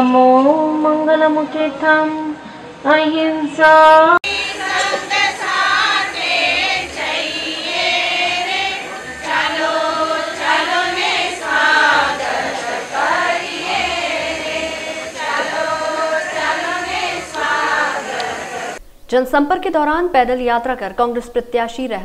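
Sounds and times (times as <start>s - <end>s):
congregation chanting prayer: 4.2s - 18.8s.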